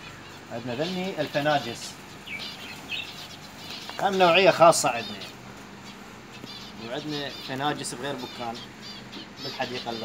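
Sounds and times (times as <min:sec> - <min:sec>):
finches chirping: 0:00.0 - 0:10.0.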